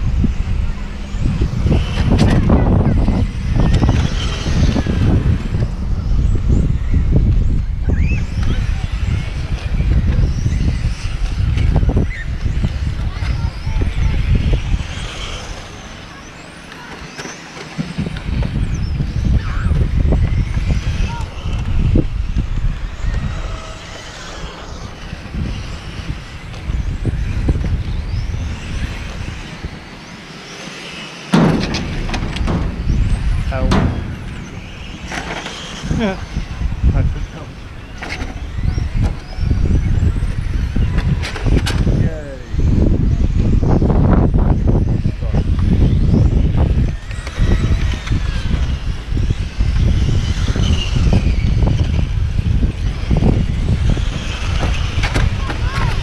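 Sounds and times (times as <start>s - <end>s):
electric toy cars whining: 0.0s - 56.0s
wind rumble on microphone: 0.0s - 56.0s.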